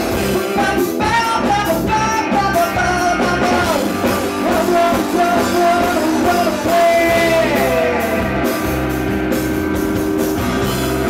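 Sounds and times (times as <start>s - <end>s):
man singing: 0.0s - 8.7s
electric guitar: 0.0s - 11.0s
live rock band playing: 0.0s - 11.0s.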